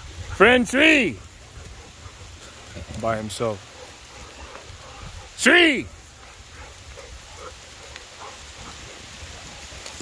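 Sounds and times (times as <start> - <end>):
steady rain falling: 0.0 - 10.0.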